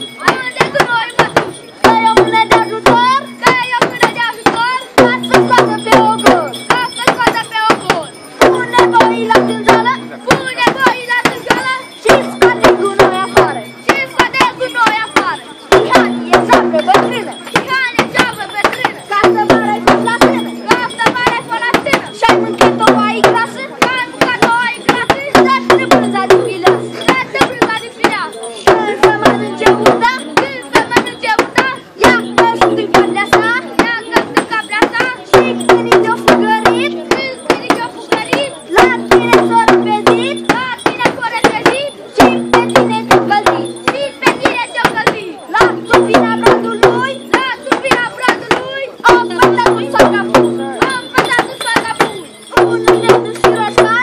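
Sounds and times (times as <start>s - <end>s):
frame drums beaten fast: 0.0s - 54.0s.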